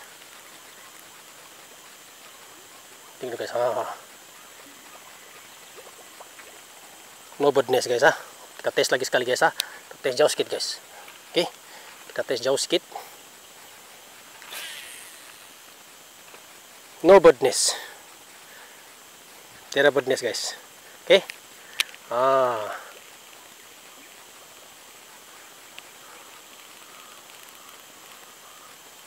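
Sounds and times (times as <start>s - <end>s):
faint outdoor background hiss: 0.0s - 29.0s.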